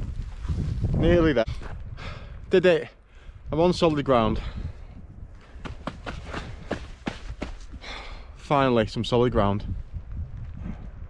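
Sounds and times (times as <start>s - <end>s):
running footsteps on tarmac: 5.5s - 8.0s.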